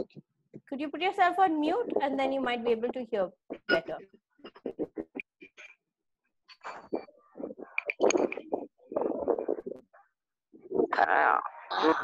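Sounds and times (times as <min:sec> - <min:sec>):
garbled voice over video call: 0:01.6 - 0:05.2, 0:07.1 - 0:10.0, 0:10.6 - 0:12.0.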